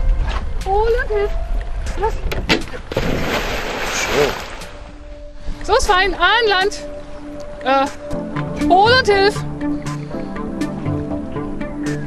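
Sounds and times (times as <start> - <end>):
dog splashing into water: 2.9 - 4.7.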